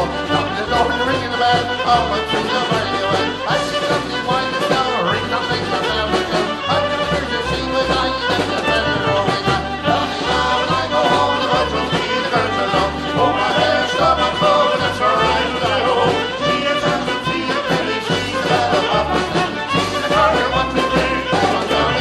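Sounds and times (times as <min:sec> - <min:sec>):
bass line: 0:00.0 - 0:22.0
drums: 0:00.0 - 0:22.0
fiddle: 0:00.0 - 0:22.0
piano accordion: 0:00.0 - 0:22.0.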